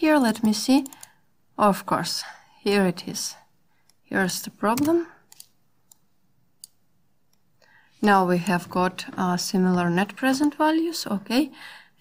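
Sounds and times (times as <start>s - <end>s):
faint computer mouse clicks: 0.4s - 1.2s.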